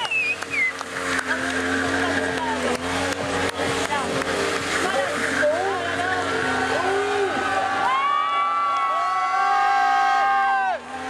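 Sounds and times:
crowd noise: 0.0 - 11.0
motorcycle engines revving: 0.0 - 11.0.

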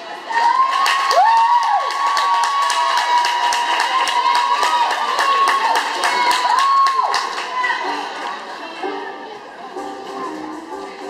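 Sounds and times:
people clapping: 0.0 - 8.5.

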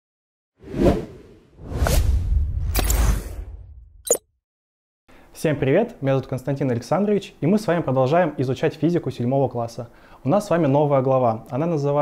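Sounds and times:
whoosh: 0.6 - 4.2.

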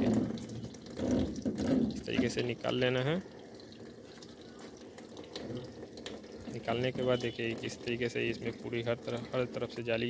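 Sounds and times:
water trickling: 0.0 - 10.0.

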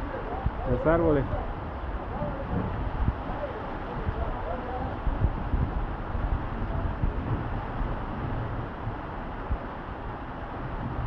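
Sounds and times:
heavy rain on metal roof: 0.0 - 11.0
low rumble of wind: 0.0 - 11.0.

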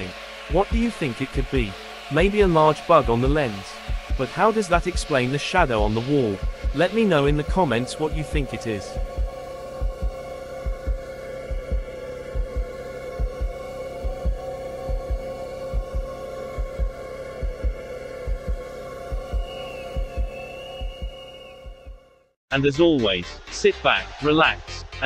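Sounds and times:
low drone: 0.0 - 21.8
heartbeat thumps: 0.0 - 22.1
high wavering tone: 0.0 - 22.2.

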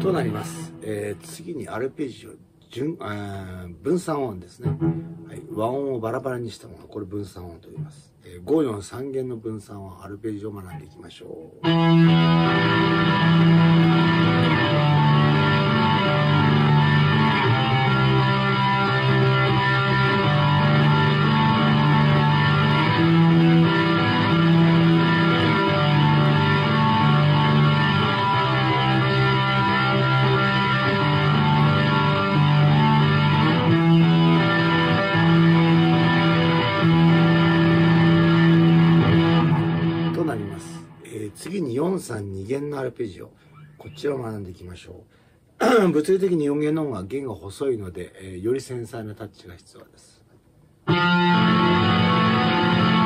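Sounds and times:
electric guitar arpeggios: 0.0 - 1.4, 4.7 - 5.5, 11.6 - 41.5, 50.9 - 53.0.

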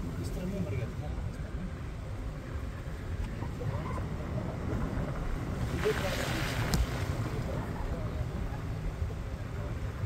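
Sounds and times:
vehicle engine and tyres rumble: 0.0 - 10.0.

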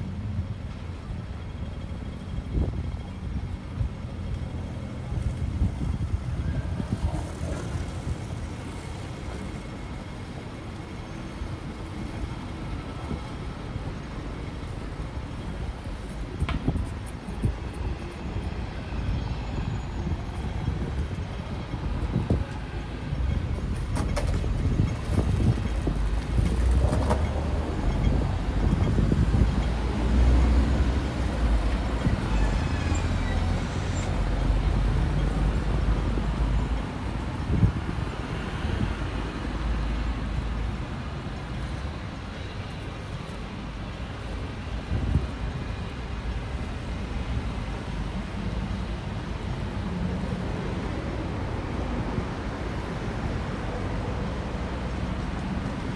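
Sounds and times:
road traffic rumble: 0.0 - 55.9.

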